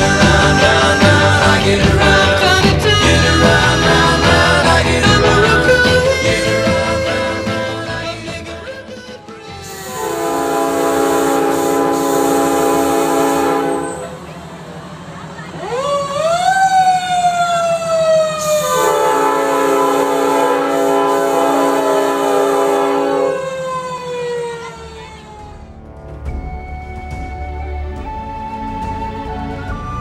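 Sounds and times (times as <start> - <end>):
fire engine air horns: 9.7 - 14.2, 15.9 - 25.3.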